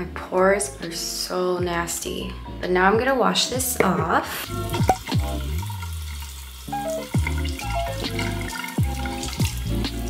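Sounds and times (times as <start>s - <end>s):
music with deep bass: 1.6s - 10.0s
water running from tap: 3.8s - 10.0s.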